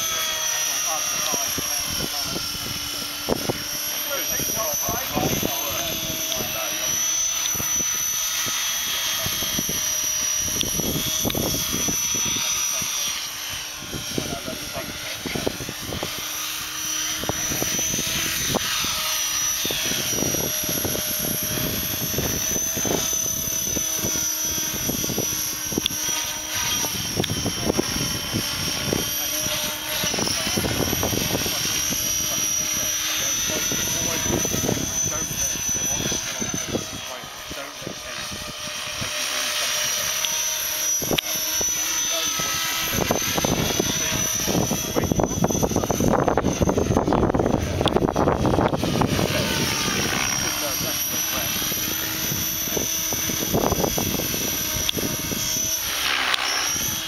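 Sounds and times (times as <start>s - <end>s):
motor and gear whine: 0.0s - 57.0s
rotor blades chopping: 0.0s - 57.0s.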